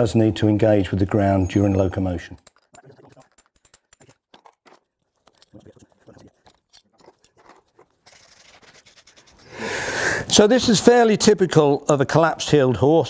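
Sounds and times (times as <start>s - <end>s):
metal clicks and crunches on nails: 2.2s - 8.1s.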